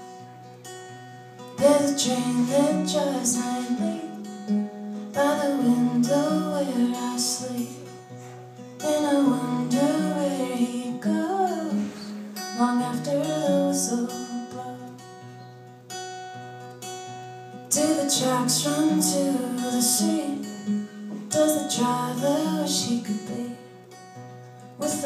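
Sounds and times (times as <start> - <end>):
strummed acoustic guitar: 0.0 - 25.0
woman singing: 1.4 - 15.3, 17.7 - 25.0.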